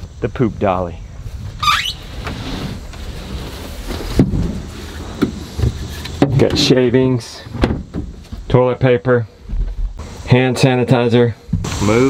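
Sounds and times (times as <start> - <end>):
knocks and bumps of handling: 3.8 - 6.7, 7.5 - 8.5.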